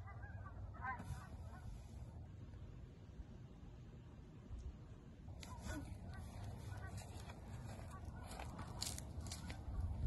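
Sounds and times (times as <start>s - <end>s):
low outdoor rumble: 0.0s - 10.0s
faint honking calls: 5.4s - 8.6s.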